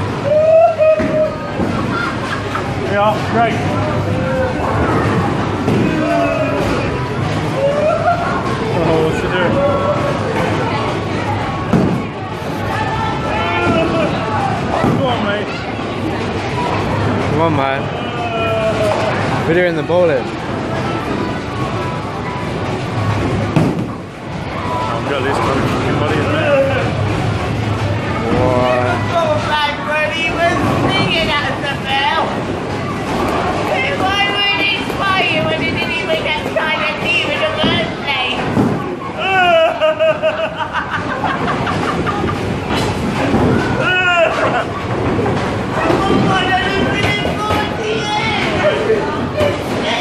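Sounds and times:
bowling alley background noise: 0.0s - 50.0s.

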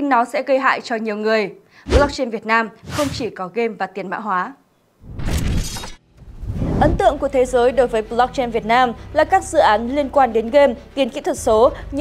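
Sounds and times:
person speaking: 1.9s - 3.5s.

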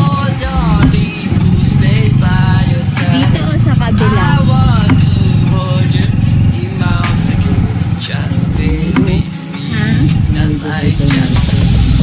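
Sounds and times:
pop song with singing: 0.0s - 12.0s.

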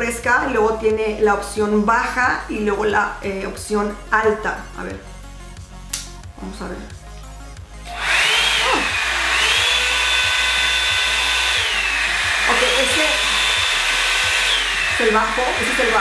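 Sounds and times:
hair dryer fan whine: 7.8s - 16.0s
hair dryer switch clicking: 7.8s - 16.0s.

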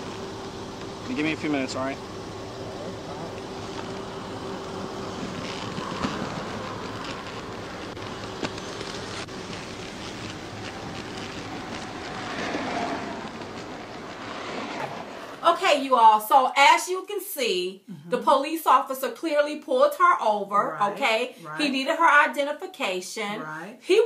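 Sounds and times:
roadside traffic: 0.0s - 15.8s
faint steady hum: 0.0s - 24.0s.

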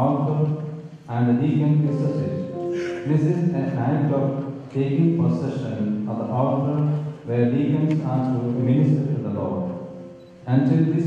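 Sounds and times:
man chanting a prayer: 0.0s - 9.8s, 10.5s - 11.0s.

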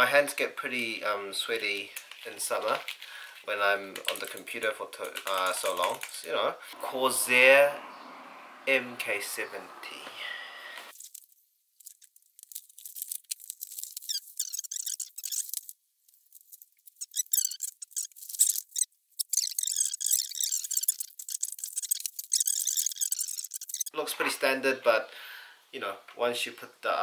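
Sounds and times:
packaging rustling and crinkling: 1.6s - 6.3s, 10.9s - 14.6s.

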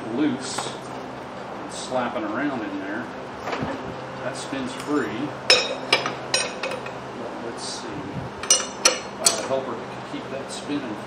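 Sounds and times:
wrenches clinking on metal: 5.5s - 7.0s, 8.4s - 9.6s.

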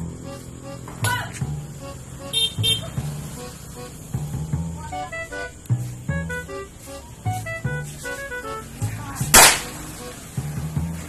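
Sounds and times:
music with steady beat: 0.0s - 11.0s
firecracker bang: 9.3s - 9.9s.

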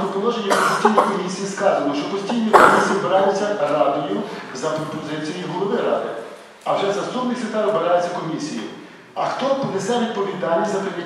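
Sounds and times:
man speaking into a microphone: 0.0s - 11.0s
man coughing: 0.5s - 1.5s, 2.1s - 3.4s.

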